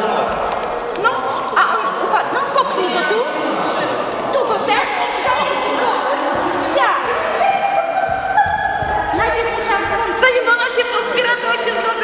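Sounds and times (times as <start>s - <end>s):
indistinct voices echoing: 0.0s - 12.0s.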